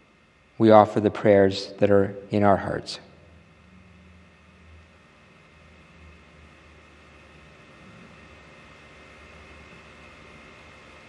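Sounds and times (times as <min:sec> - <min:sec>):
faint steady hiss: 0:00.0 - 0:11.0
low hum: 0:00.0 - 0:11.0.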